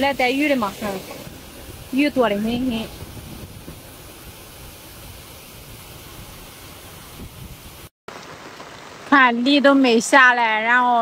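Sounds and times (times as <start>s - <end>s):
floodwater rushing over barrier: 0.0s - 10.7s.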